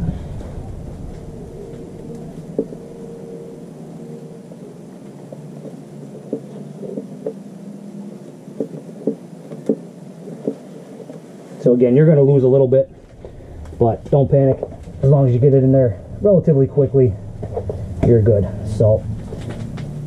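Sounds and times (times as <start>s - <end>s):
low steady hum: 0.0s - 20.0s
faint clicks and taps: 8.3s - 11.3s.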